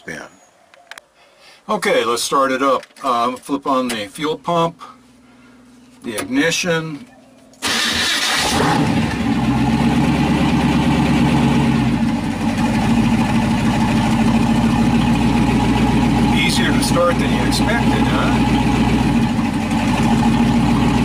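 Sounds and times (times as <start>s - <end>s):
hot-rod engine starting and idling: 7.6s - 21.0s.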